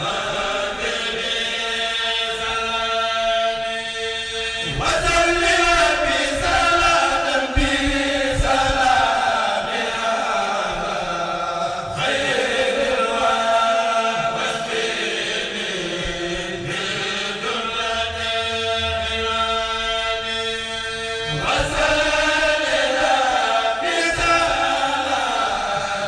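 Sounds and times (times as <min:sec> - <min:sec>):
group chanting together: 0:00.0 - 0:26.0.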